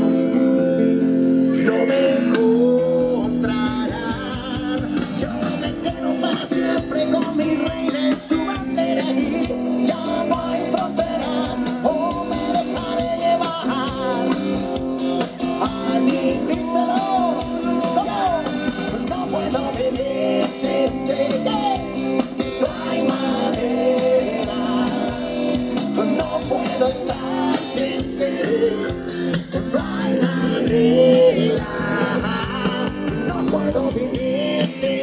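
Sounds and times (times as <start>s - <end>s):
person singing: 0.0s - 14.6s, 15.4s - 35.0s
drums: 0.0s - 35.0s
electric bass: 0.0s - 35.0s
live rock band: 0.0s - 35.0s.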